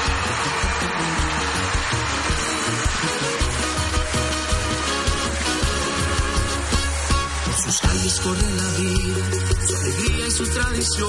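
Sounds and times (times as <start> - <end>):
live instrumental music: 0.0 - 11.0.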